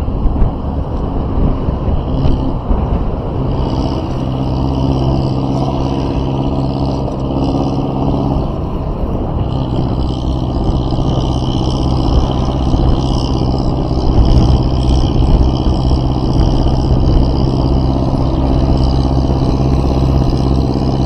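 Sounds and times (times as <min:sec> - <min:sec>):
road noise: 0:00.0 - 0:21.0
vehicle engine running: 0:00.0 - 0:21.0.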